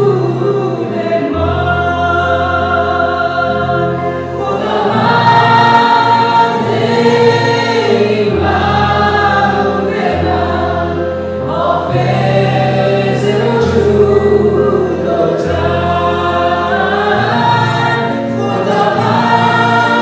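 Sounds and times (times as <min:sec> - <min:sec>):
group singing worship song: 0:00.0 - 0:20.0
instrumental backing with bass notes: 0:00.0 - 0:20.0.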